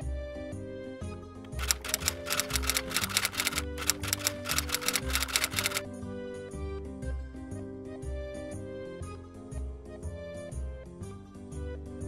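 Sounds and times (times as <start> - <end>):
typewriter keys clattering: 1.5 - 5.8.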